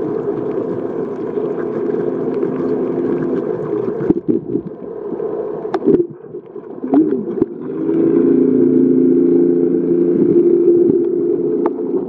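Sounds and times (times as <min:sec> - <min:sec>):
underwater motor hum: 0:00.0 - 0:12.0.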